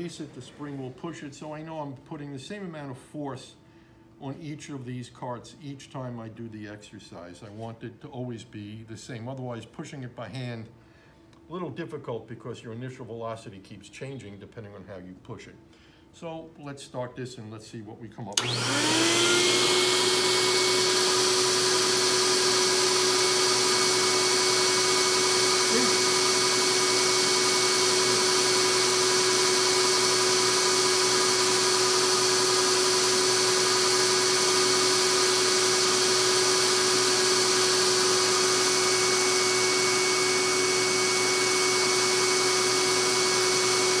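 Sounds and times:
blower air rushing: 0:18.4 - 0:33.1
blower whine: 0:18.4 - 0:44.0.

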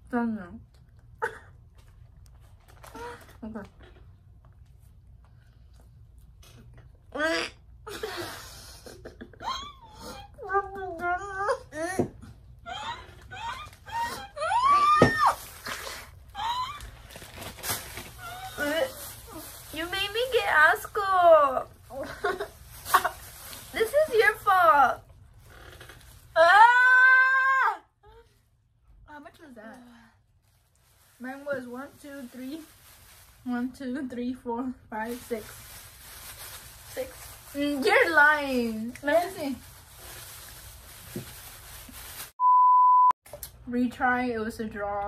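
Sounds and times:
spitting into plastic bag: 0:14.7 - 0:20.6, 0:21.9 - 0:24.6.

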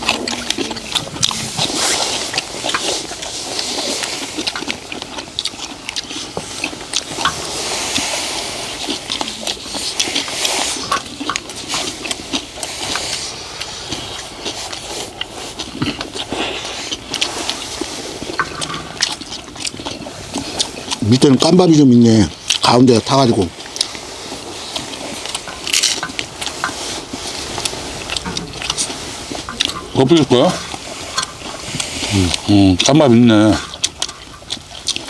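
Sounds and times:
chewing sounds: 0:00.0 - 0:35.0
wooden spoons scraping iron wok: 0:24.3 - 0:35.0.

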